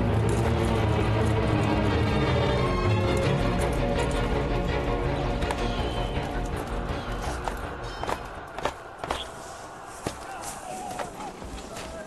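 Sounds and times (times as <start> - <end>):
horse hooves clopping: 0.0 - 9.4
background music: 0.0 - 11.6.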